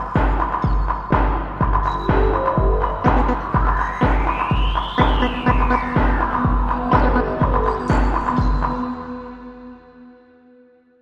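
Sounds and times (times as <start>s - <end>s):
kick drum beat: 0.0s - 8.9s
deep house music: 0.0s - 9.6s.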